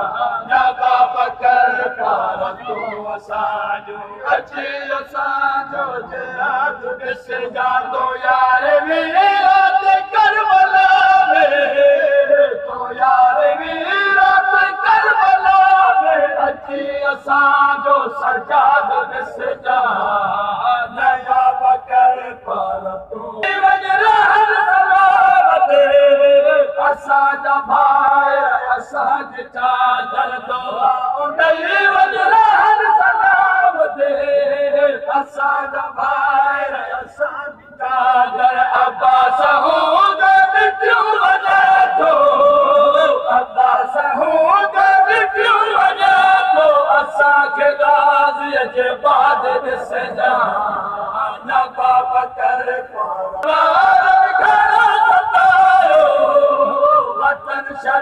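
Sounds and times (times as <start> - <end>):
men chanting a lament: 0.0 - 58.0.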